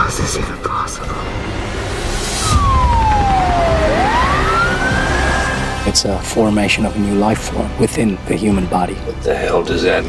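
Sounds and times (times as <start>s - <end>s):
low rumble: 0.0s - 6.0s
siren wailing: 2.3s - 6.0s.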